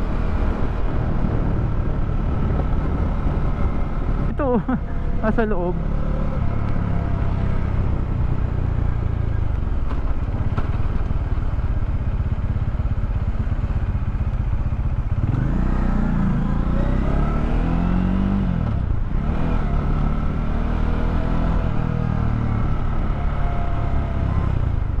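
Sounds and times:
wind noise on microphone: 0:00.0 - 0:04.4
motorcycle engine running: 0:00.0 - 0:17.2.

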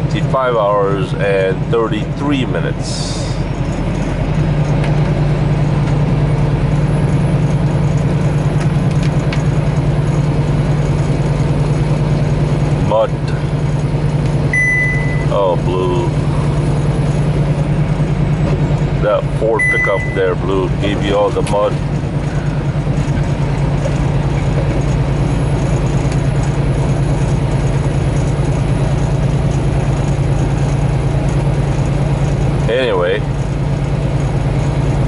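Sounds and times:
road noise: 0:00.0 - 0:35.0
truck diesel engine drone: 0:00.0 - 0:35.0.

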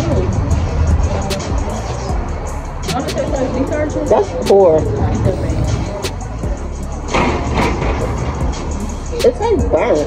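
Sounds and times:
low street rumble: 0:00.0 - 0:10.0.

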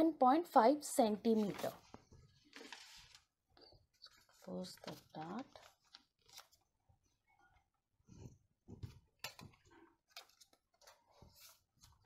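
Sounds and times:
paper rustling and clicks: 0:02.5 - 0:03.3, 0:04.1 - 0:06.6, 0:08.8 - 0:12.0.

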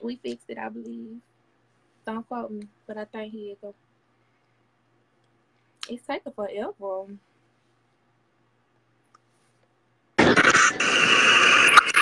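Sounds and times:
harsh hissing screechy noise: 0:10.2 - 0:12.0.

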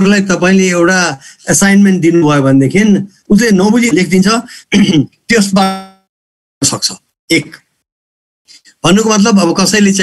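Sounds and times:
man speaking: 0:00.0 - 0:07.7, 0:08.5 - 0:10.0.

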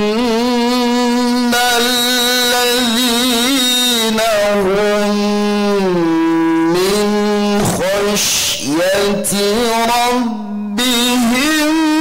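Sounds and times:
man chanting through a microphone: 0:00.0 - 0:12.0.

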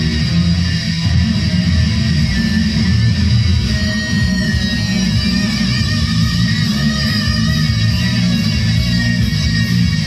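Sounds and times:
heavy rock electric guitar: 0:00.0 - 0:10.0.

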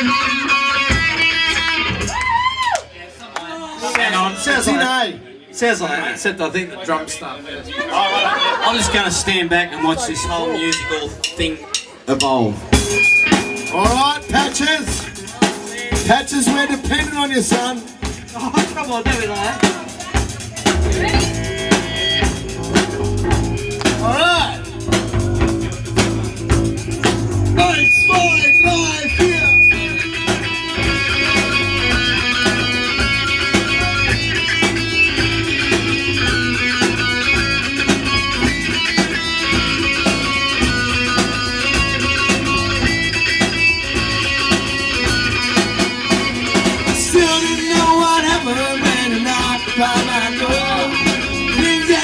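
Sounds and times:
drum kit: 0:00.0 - 0:02.6, 0:10.7 - 0:52.0
electric guitar: 0:00.0 - 0:02.8, 0:19.3 - 0:52.0.

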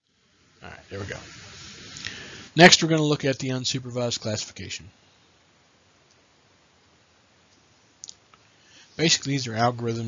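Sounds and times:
person speaking: 0:00.6 - 0:04.9, 0:09.0 - 0:10.0.

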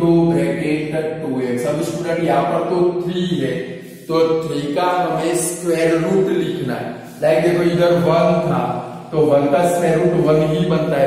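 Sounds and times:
man's voice with held syllables: 0:00.0 - 0:11.0.

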